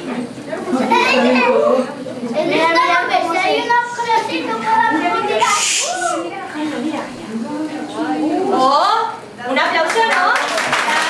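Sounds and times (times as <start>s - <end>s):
children talking over one another: 0.5s - 10.1s.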